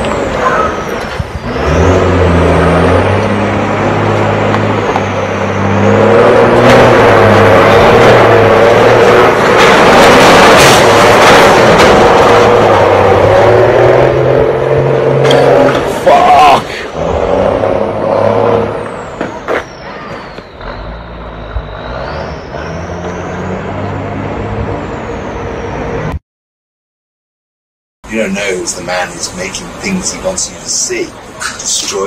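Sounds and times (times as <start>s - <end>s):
diesel engine revving: 0.0s - 26.2s
loud rising squeal: 0.1s - 26.2s.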